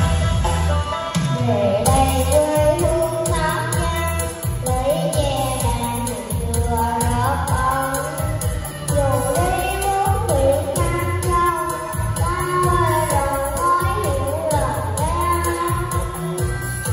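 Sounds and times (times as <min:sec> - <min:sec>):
backing track with steady beat: 0:00.0 - 0:16.9
little girl singing: 0:01.4 - 0:16.9.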